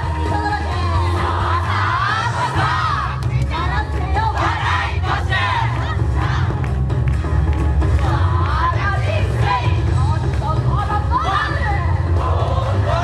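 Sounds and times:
amplified dance music: 0.0 - 13.0.

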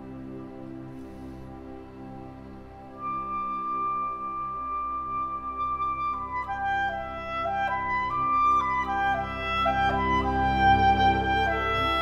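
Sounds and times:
slow instrumental music: 0.0 - 12.0.

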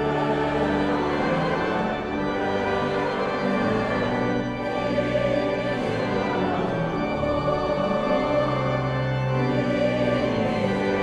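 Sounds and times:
congregation and choir singing hymn: 0.0 - 11.0
organ: 0.0 - 11.0.

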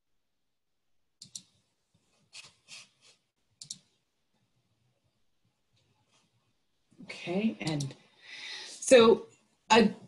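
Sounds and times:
computer mouse clicks: 1.2 - 1.6, 3.6 - 3.9, 7.6 - 8.0.

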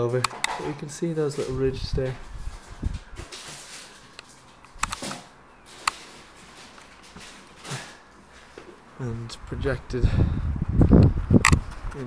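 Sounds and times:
sharp clicks: 4.2 - 5.2.

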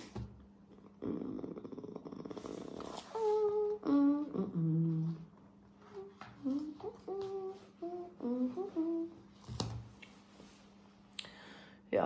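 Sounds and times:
woman humming: 0.7 - 9.3.

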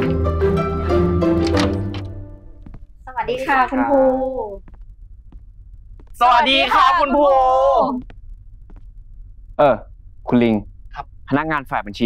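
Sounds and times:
low room hum: 1.5 - 12.0.

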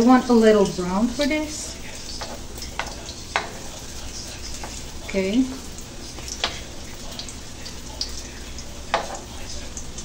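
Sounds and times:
omelette mixture sizzling in oil: 0.0 - 10.0.

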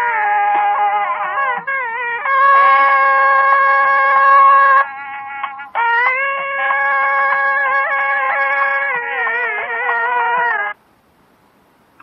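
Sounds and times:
faint steady drone tone: 0.0 - 12.0.

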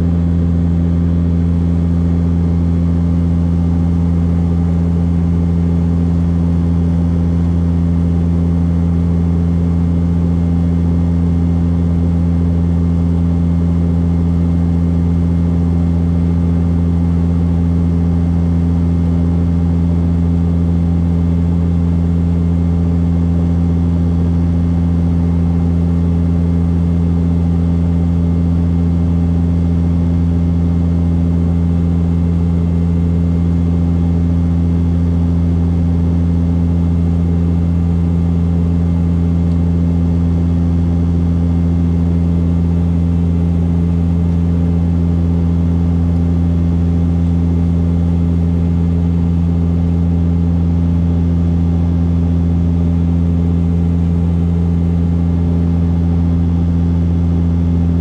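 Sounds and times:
propeller engine drone: 0.0 - 58.0.

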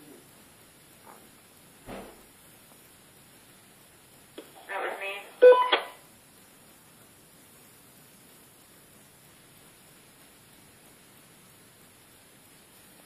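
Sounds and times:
steady hiss: 0.0 - 13.0
electronic burst with beeps: 5.4 - 6.0.

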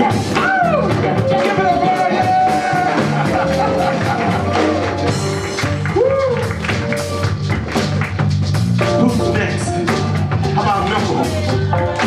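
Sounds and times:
funk band playing: 0.0 - 12.0.

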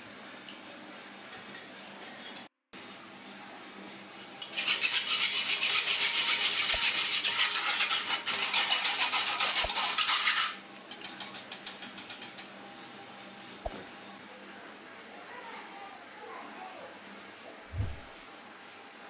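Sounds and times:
whisk rasping against mesh strainer: 4.4 - 12.5.

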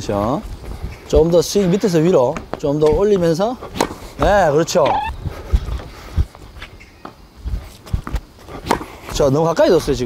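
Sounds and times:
tennis ball bouncing: 2.3 - 5.1, 8.1 - 8.9
footsteps on hard court: 2.3 - 9.9
racket striking ball: 3.7 - 5.0, 8.6 - 8.9.

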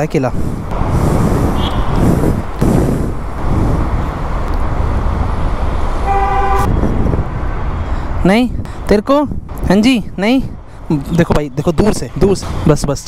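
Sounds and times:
road traffic rumble: 0.0 - 13.0
vehicle horn: 1.6 - 2.0, 6.0 - 6.7.

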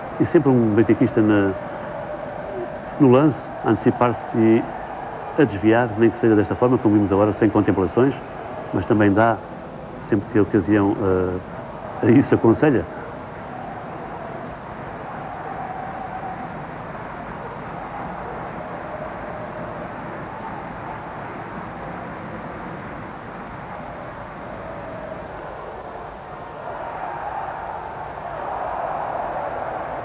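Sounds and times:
stadium crowd hubbub: 0.0 - 30.0.

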